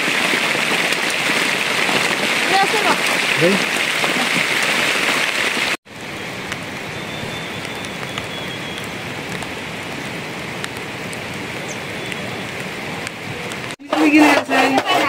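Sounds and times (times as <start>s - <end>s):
raindrop ticks: 0.0s - 5.8s, 6.4s - 13.8s
steady rain falling: 0.0s - 14.4s.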